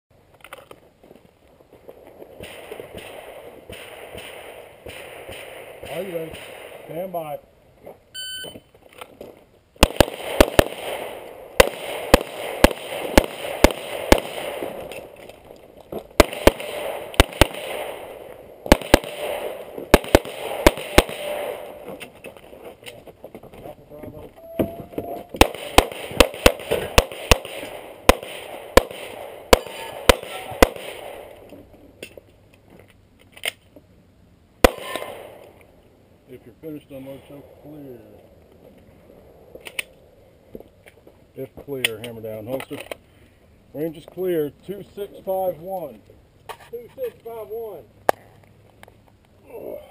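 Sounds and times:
pistol shots: 0:02.4 - 0:07.3, 0:09.8 - 0:15.2, 0:16.1 - 0:22.0, 0:25.3 - 0:31.5, 0:34.6 - 0:35.5.

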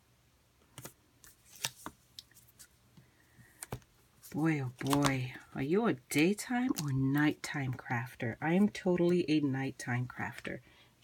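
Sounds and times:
paper and tape rustling: 0:00.8 - 0:02.8, 0:03.4 - 0:05.5.

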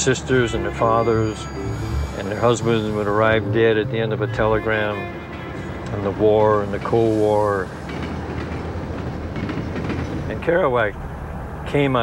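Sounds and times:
subway train running on track: 0:00.0 - 0:12.0.

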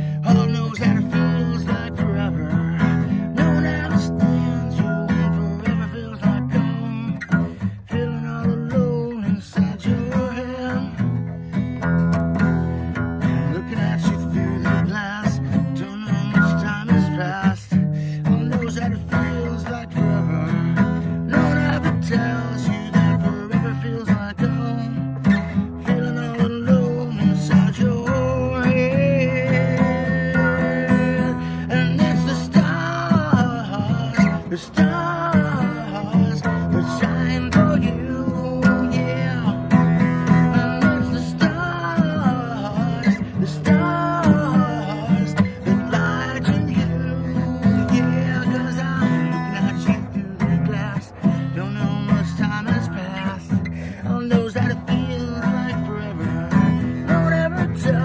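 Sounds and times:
acoustic guitar strumming: 0:00.0 - 0:58.0
man singing: 0:00.0 - 0:58.0.

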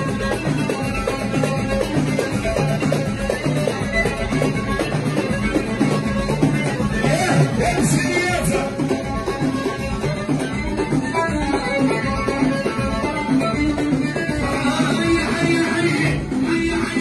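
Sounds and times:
hand percussion beat: 0:00.0 - 0:17.0
keyboard melody: 0:00.0 - 0:17.0.

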